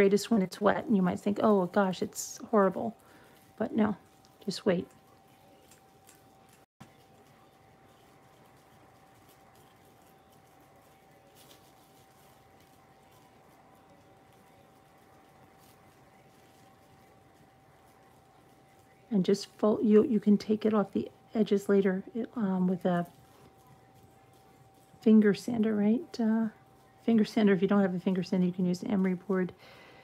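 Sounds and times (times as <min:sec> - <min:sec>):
plastic wrap crinkling: 0:00.0 - 0:29.7
faint steady whine: 0:00.0 - 0:30.0.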